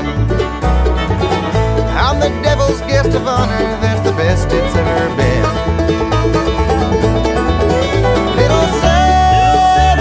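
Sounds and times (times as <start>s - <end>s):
banjo picking: 0.0s - 10.0s
bass line: 0.0s - 10.0s
guitar picking: 0.0s - 10.0s.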